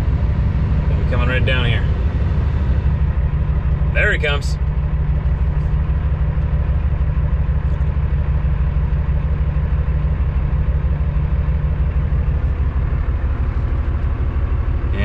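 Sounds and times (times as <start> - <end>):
diesel engine running inside cab: 0.0 - 15.0.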